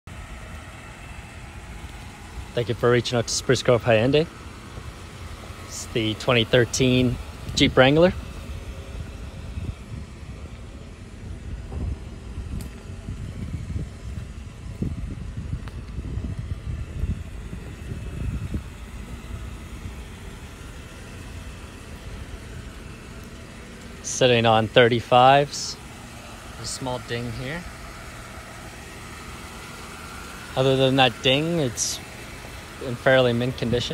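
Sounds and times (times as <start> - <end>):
low uneven outdoor rumble: 0.1 - 33.9.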